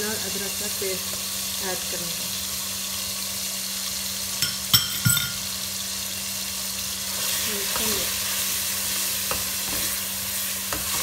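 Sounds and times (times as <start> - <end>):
onions sizzling in oil: 0.0 - 11.0
ringing glass clink: 4.4 - 5.4.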